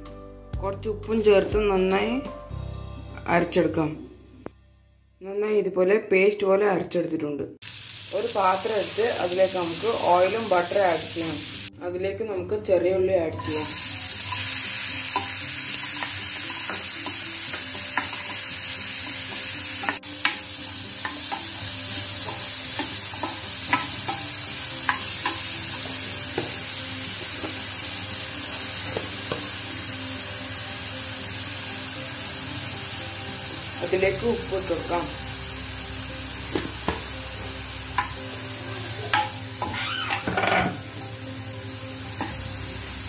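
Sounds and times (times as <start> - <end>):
onions sizzling in butter: 7.6 - 11.7, 13.4 - 43.0
spoon scraping a pan: 13.4 - 26.6.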